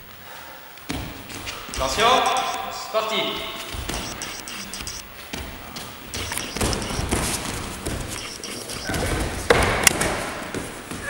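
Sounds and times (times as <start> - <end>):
bare feet thudding on mats: 0.8 - 2.2, 5.1 - 6.1, 7.1 - 8.2.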